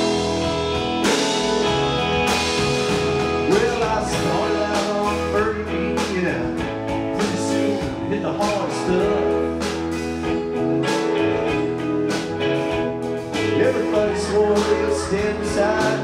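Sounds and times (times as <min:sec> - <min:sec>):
bass line: 0:00.0 - 0:16.0
drums keeping a steady beat: 0:00.0 - 0:16.0
sustained keyboard chords: 0:00.0 - 0:16.0.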